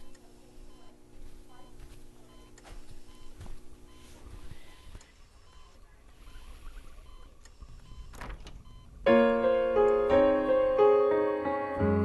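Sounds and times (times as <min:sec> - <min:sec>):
door opening by handle: 0:08.0 - 0:08.8.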